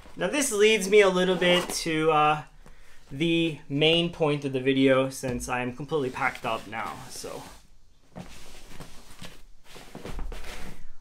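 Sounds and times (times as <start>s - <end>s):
fabric backpack rustling: 6.2s - 11.0s.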